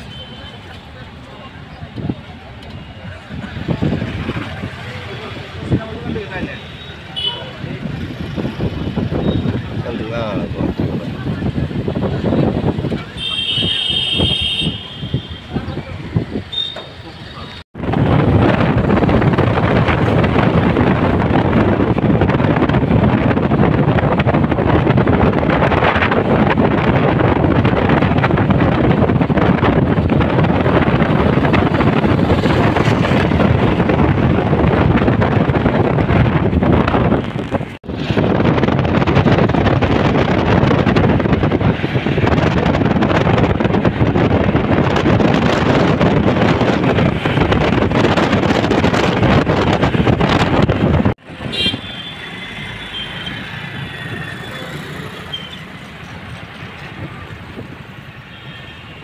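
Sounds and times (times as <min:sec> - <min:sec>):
car road noise: 0:00.0 - 0:59.0
street traffic: 0:00.0 - 0:59.0
wind rushing over microphone: 0:01.1 - 0:59.0.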